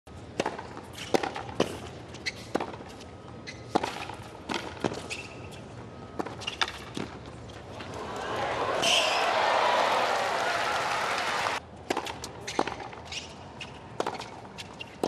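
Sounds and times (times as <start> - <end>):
tennis ball bouncing: 0.3 - 5.2, 6.2 - 7.2, 11.9 - 13.0, 13.7 - 15.0
shoe squeaks: 2.1 - 4.1, 4.9 - 7.6, 12.4 - 15.0.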